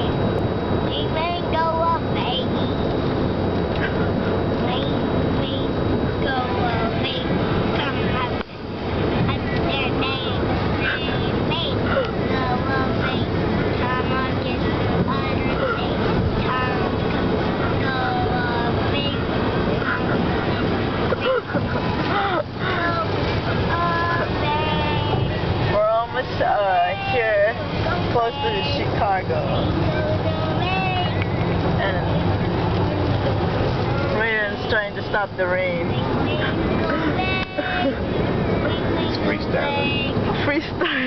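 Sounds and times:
car road and engine rumble: 0:00.0 - 0:41.0
young boy's voice: 0:00.8 - 0:02.7, 0:04.5 - 0:08.5, 0:09.2 - 0:17.1, 0:17.7 - 0:20.5, 0:22.1 - 0:25.6, 0:26.7 - 0:31.3, 0:35.9 - 0:40.5.

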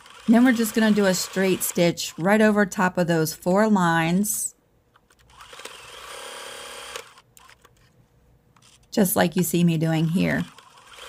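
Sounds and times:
sewing machine stitching: 0:00.0 - 0:02.3, 0:10.4 - 0:11.0.

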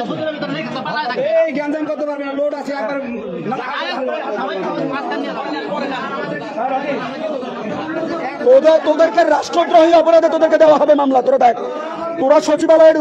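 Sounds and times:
murmur of men's voices: 0:00.0 - 0:13.0.

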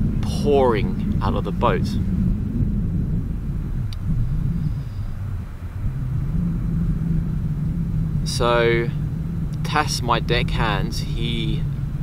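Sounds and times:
faint hum: 0:00.0 - 0:12.0
low outdoor rumble: 0:00.0 - 0:12.0.

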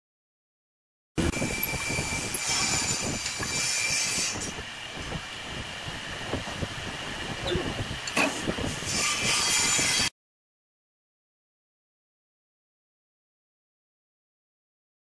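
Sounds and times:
wood lathe whining and rattling: 0:01.3 - 0:04.5.

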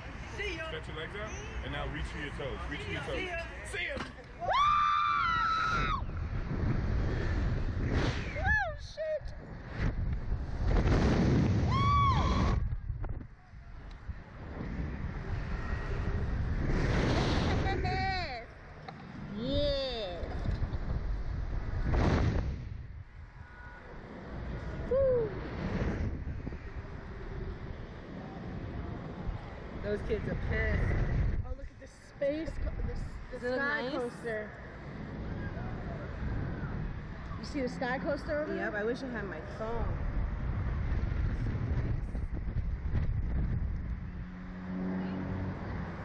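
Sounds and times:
wind rushing over microphone: 0:00.0 - 0:46.0.

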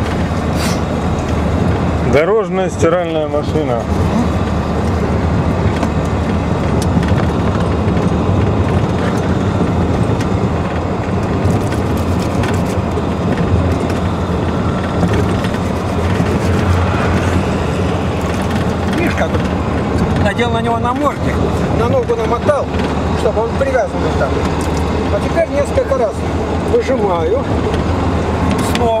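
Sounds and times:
minibus engine and road rumble: 0:00.0 - 0:29.0.

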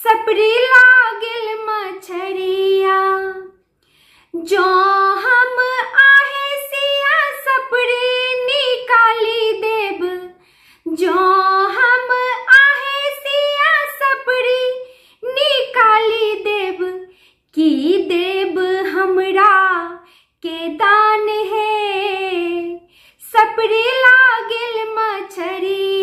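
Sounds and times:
woman singing unaccompanied: 0:00.0 - 0:03.6, 0:04.4 - 0:26.0.

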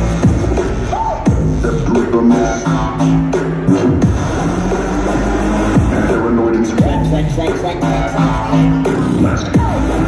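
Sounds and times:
electronic bass music: 0:00.0 - 0:10.0.

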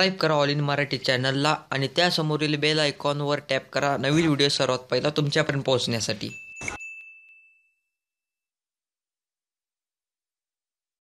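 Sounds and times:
high bell ding: 0:06.2 - 0:08.2.

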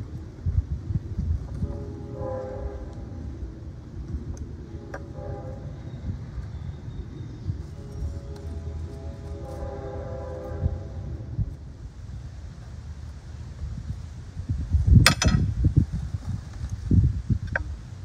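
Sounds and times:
passing train rumble: 0:00.0 - 0:18.0
train horn blasts: 0:01.5 - 0:03.4, 0:04.6 - 0:06.6, 0:07.6 - 0:11.6.

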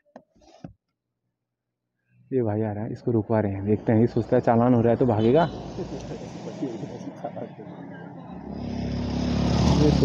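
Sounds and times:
motorcycle engine approaching: 0:08.3 - 0:10.0.

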